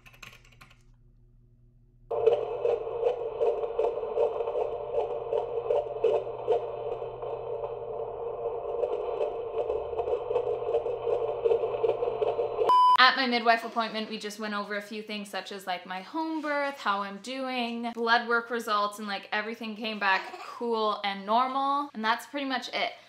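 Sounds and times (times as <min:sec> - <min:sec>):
low hum: 0:00.1 - 0:13.0.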